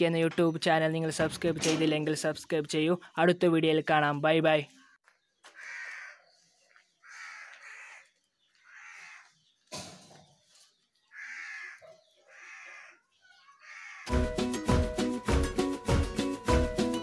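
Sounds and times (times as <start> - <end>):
bird calling: 4.8 - 9.7, 10.4 - 14.1.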